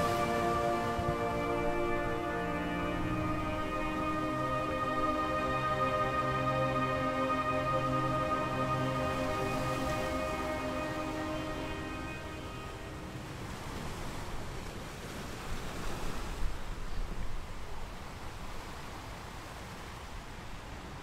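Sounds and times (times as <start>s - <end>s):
music track: 0.0s - 13.6s
ocean surf washing: 0.0s - 20.5s.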